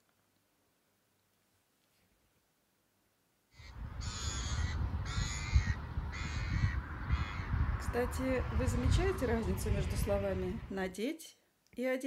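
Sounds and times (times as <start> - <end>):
gulls calling: 3.6 - 10.7
low rumble: 3.8 - 10.7.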